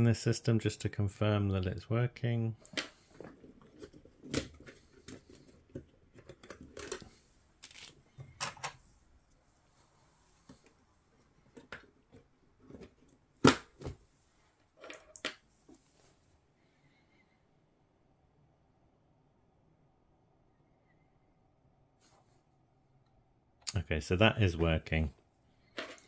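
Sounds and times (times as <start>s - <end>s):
handling noise: 2.6s - 16.2s, 25.6s - 26.0s.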